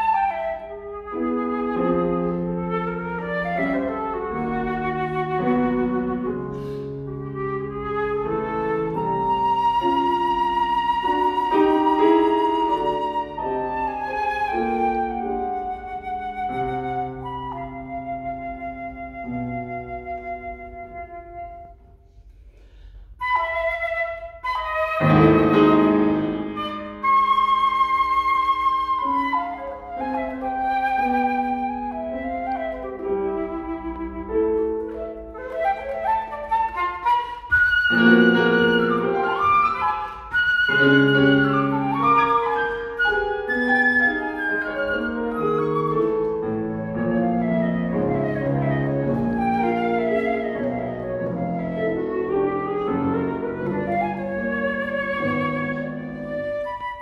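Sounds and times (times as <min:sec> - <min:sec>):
flute melody: 0:00.0 - 0:57.0
piano chords: 0:00.0 - 0:57.0.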